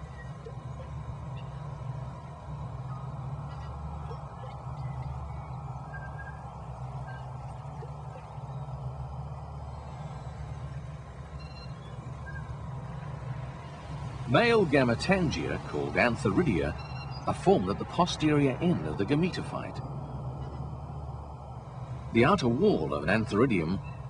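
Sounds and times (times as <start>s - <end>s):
low ambient drone: 0.0s - 24.0s.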